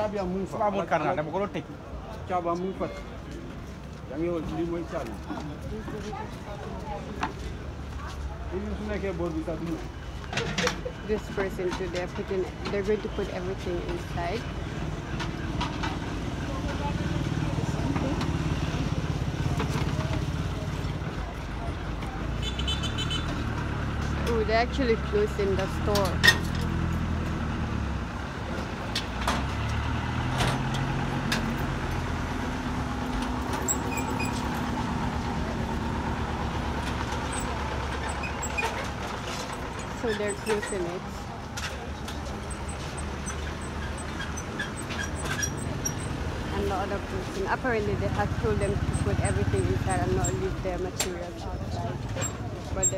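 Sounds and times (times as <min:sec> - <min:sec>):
low street rumble: 0:00.0 - 0:52.9
vehicle engine running: 0:45.6 - 0:52.9.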